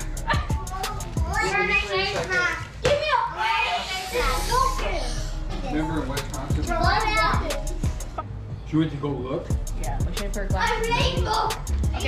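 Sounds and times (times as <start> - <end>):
children talking and exclaiming: 0.0 - 8.2, 10.4 - 12.0
music: 0.0 - 12.0
hissing noise: 3.6 - 5.4.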